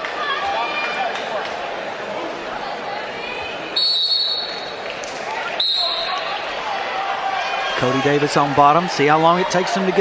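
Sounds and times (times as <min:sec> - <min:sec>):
murmur of arena crowd: 0:00.0 - 0:10.0
referee's whistle blasts: 0:03.8 - 0:04.6, 0:05.6 - 0:06.2.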